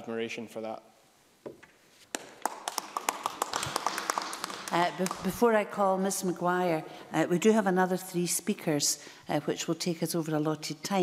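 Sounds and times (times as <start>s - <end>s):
scattered applause: 2.1s - 5.3s.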